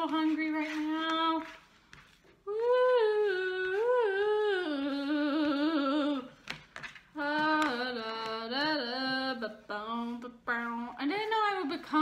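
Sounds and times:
person singing wordless tune: 0:02.4 - 0:06.5, 0:07.1 - 0:12.0.

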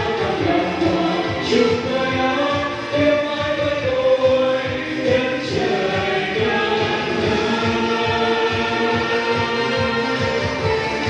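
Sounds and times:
backing track with steady beat: 0:00.0 - 0:11.0
vocal ensemble singing: 0:00.0 - 0:11.0.

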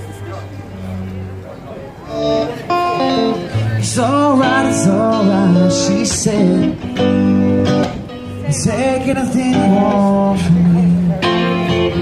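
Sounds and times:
electric guitar through amplifier: 0:00.0 - 0:12.0.

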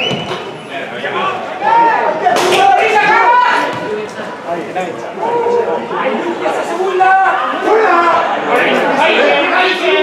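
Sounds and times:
voices shouting and talking: 0:00.0 - 0:10.0.

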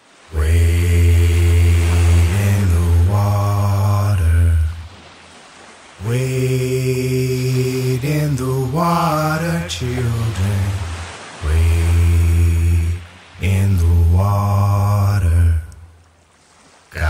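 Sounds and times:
man chanting long notes: 0:06.0 - 0:10.8.

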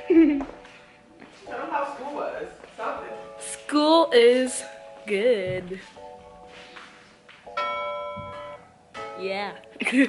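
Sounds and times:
bell chime ringing: 0:07.6 - 0:08.7.

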